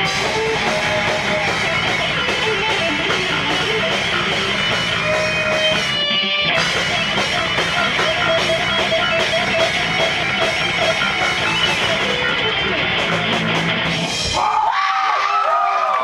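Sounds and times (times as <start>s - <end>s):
people shouting and whooping: 0.0s - 3.2s, 14.2s - 16.0s
thrash metal band playing live: 0.0s - 14.6s.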